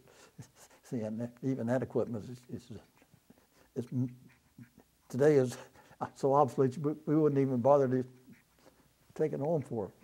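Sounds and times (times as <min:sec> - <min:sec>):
man speaking hesitantly: 0:00.0 - 0:03.0, 0:03.7 - 0:08.4, 0:09.1 - 0:10.0.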